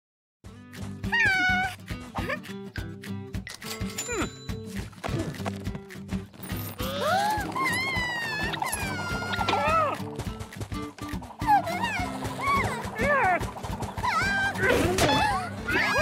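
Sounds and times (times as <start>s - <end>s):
bouncy cartoon music: 0.4s - 16.0s
squeaky character vocalizations: 6.8s - 10.0s, 11.4s - 16.0s.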